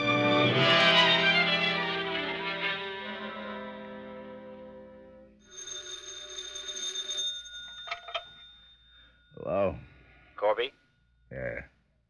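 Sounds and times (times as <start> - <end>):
telephone bell ringing: 5.4 - 9.4.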